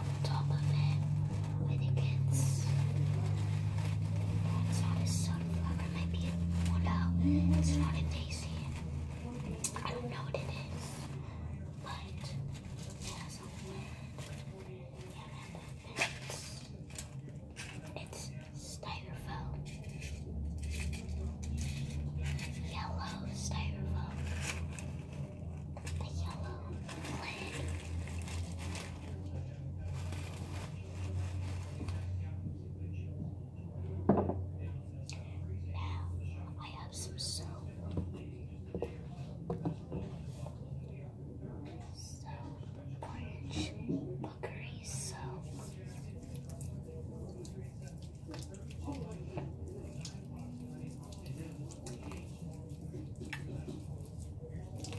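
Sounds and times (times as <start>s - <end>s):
steady low hum: 0.0s - 54.9s.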